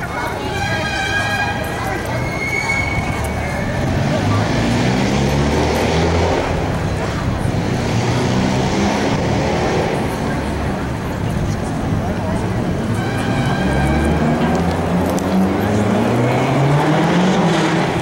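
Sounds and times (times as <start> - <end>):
outdoor noise: 0.0 - 18.0
people talking: 0.0 - 18.0.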